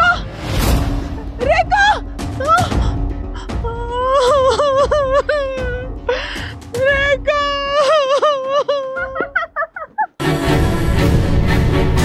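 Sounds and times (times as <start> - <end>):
woman wailing and sobbing: 1.4 - 10.2.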